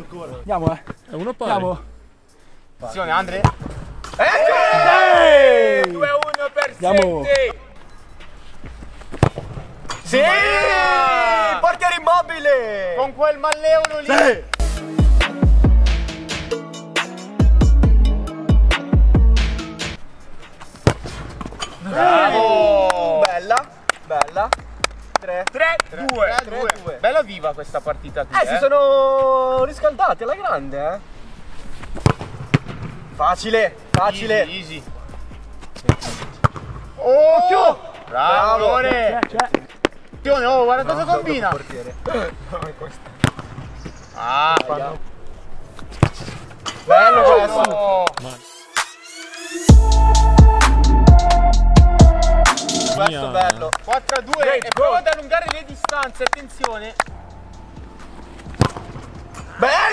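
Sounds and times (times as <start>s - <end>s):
outdoor background noise: 0.0s - 17.4s, 18.0s - 50.1s, 52.5s - 59.9s
football being kicked: 9.1s - 9.7s, 20.8s - 21.6s, 32.0s - 33.1s, 35.8s - 36.8s, 41.5s - 43.7s, 45.9s - 46.5s, 58.4s - 59.1s
soft background music: 49.5s - 59.9s.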